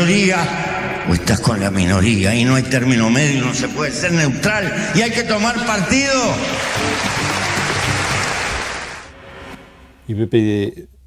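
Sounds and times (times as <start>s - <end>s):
background music: 0.0s - 10.3s
large audience applauding: 6.1s - 9.1s.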